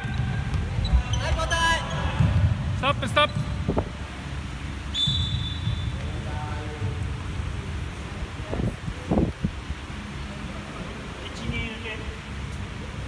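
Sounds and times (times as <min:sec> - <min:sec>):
distant players' voices: 0:00.0 - 0:13.0
high shoe squeak: 0:00.8 - 0:02.2, 0:04.9 - 0:06.0.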